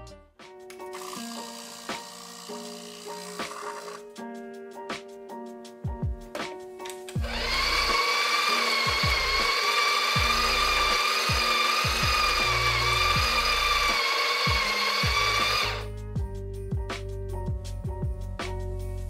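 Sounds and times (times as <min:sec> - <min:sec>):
espresso machine pump whining: 0:00.9 - 0:04.0, 0:07.2 - 0:15.9.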